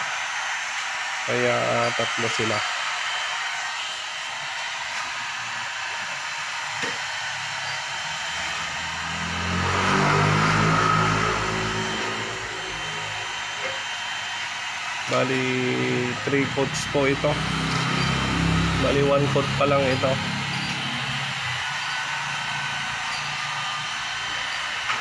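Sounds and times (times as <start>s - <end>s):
heat gun blowing hot air: 0.0s - 25.0s
low drone: 7.6s - 14.0s, 15.0s - 24.3s.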